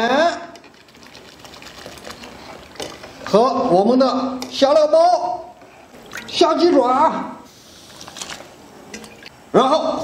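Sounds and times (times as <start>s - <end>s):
salt hissing into liquid: 7.5s - 8.4s.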